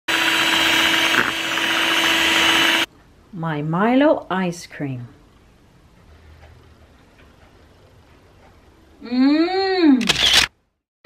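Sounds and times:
electric hand mixer whirring: 0:00.1 - 0:02.9.

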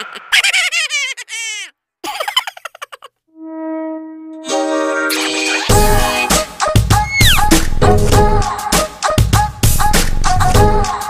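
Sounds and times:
comic falling chirpy notes: 0:03.4 - 0:06.4
backing music: 0:04.4 - 0:11.0.

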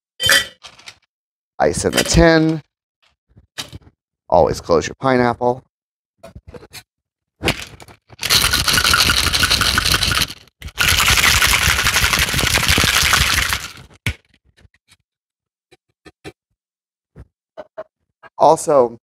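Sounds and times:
ice shaken in metal cocktail shaker: 0:08.2 - 0:14.0.

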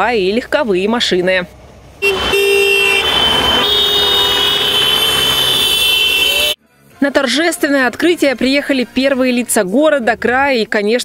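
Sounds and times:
cars passing close by: 0:00.1 - 0:06.6
car horns honking: 0:02.0 - 0:06.6.

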